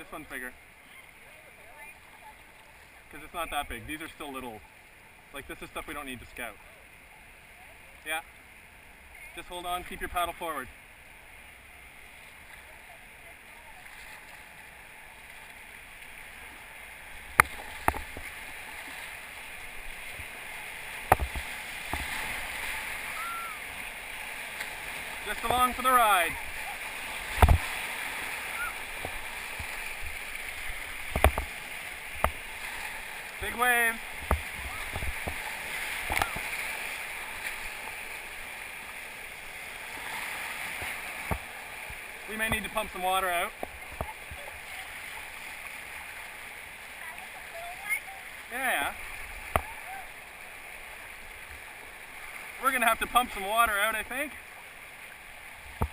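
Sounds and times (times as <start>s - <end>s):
rushing whitewater: 0.0s - 55.9s.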